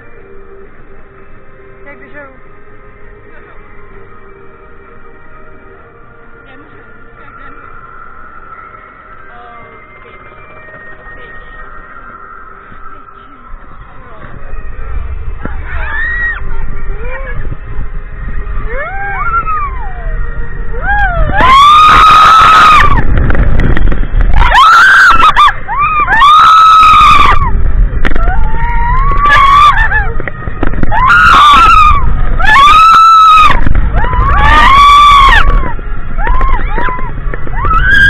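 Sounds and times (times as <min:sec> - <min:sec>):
roller coaster car on track: 0:00.0 - 0:38.0
wind on microphone: 0:12.6 - 0:38.0
riders screaming: 0:20.8 - 0:23.0, 0:24.3 - 0:27.5, 0:28.1 - 0:38.0.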